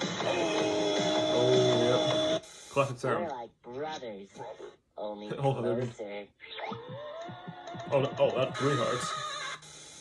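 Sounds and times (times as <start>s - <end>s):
cartoon voice and music: 0.0s - 2.2s, 6.5s - 9.6s.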